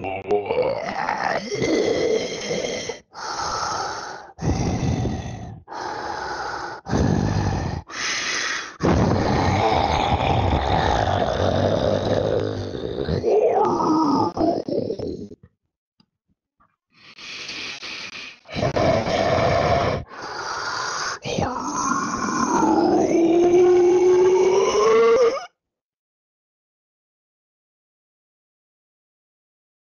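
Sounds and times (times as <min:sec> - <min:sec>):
deep rough dinosaur roar: 0:08.8 - 0:14.8, 0:18.5 - 0:20.1, 0:21.2 - 0:25.3.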